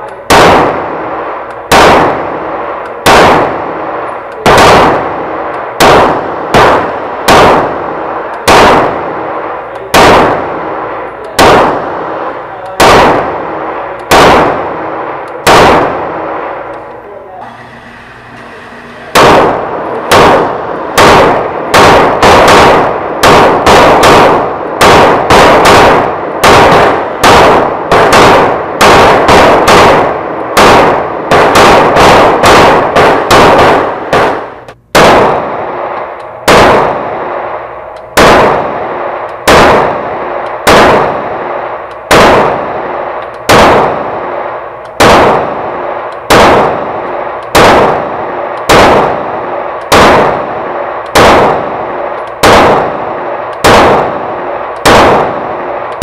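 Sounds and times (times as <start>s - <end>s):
pistol shots ringing indoors: 0.0s - 56.0s.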